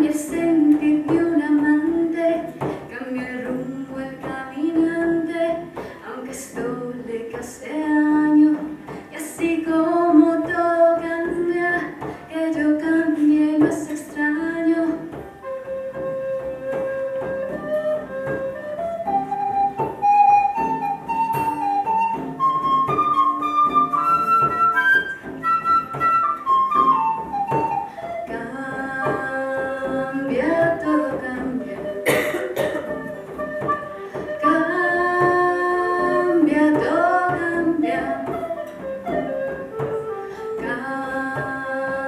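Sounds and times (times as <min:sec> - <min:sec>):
strummed acoustic guitar: 0:00.0 - 0:34.4
frame drum: 0:00.0 - 0:42.0
flute melody: 0:15.1 - 0:41.6.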